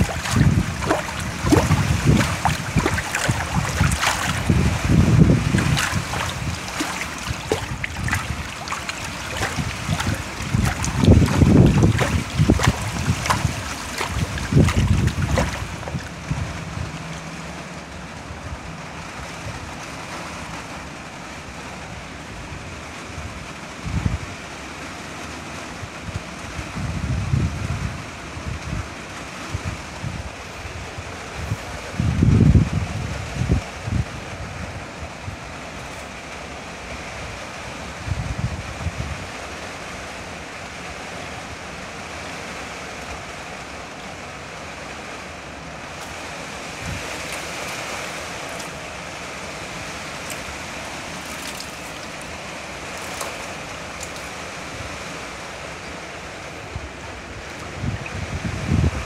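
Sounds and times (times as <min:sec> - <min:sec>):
microphone handling bumps: 0:09.4 - 0:16.1.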